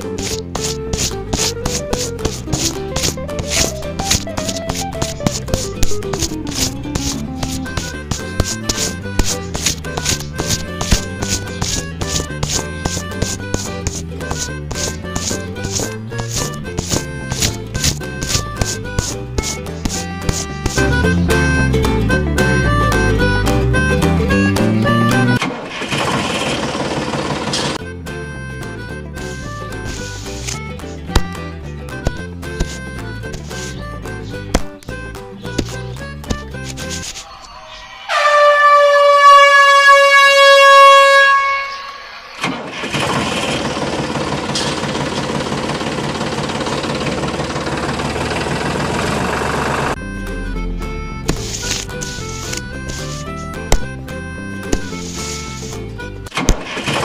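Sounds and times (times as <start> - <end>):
toy tractor mechanical rattle: 0.0 - 21.1, 25.3 - 27.8, 29.8 - 31.2, 42.4 - 50.0, 51.3 - 53.4, 54.9 - 57.0
background music: 0.0 - 25.6, 27.5 - 38.8, 49.9 - 57.0
train horn blast: 38.1 - 42.2.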